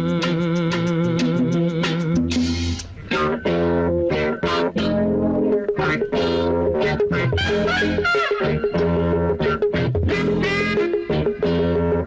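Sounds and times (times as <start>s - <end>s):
bass line: 0.0s - 12.0s
guitar notes: 0.0s - 12.0s.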